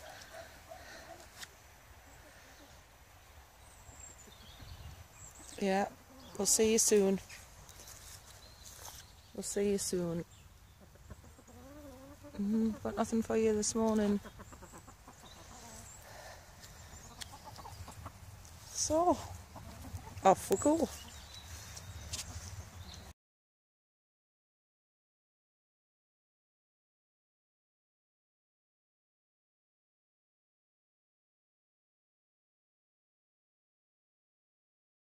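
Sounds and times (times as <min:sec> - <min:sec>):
hens clucking: 0:00.0 - 0:03.0, 0:10.6 - 0:22.9.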